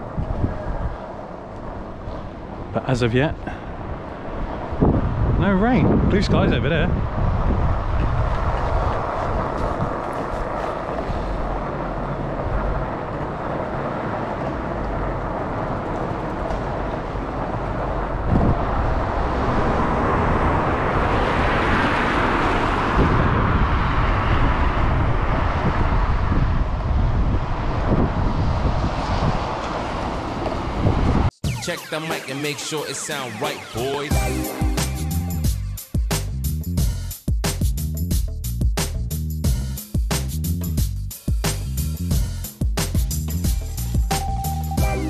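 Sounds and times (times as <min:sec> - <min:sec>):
wind rushing over microphone: 0:00.0 - 0:31.6.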